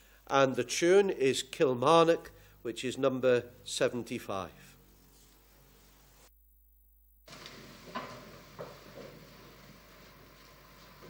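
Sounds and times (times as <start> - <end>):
soft shuffling: 4.7 - 6.3.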